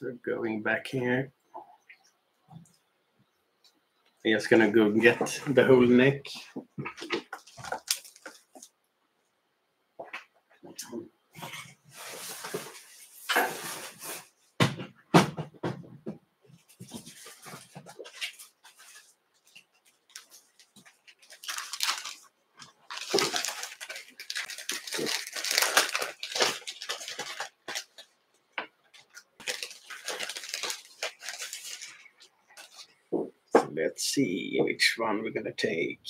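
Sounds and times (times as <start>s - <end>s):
rustling of packets: 7.0s - 8.7s, 16.7s - 28.2s, 28.8s - 33.0s.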